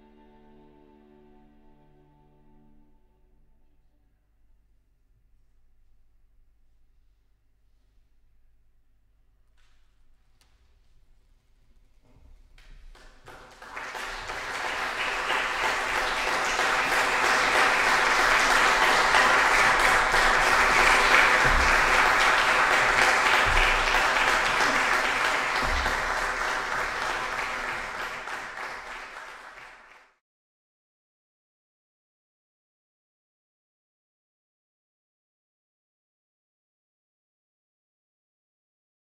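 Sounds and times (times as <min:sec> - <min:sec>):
audience applauding: 0:12.9 - 0:30.2.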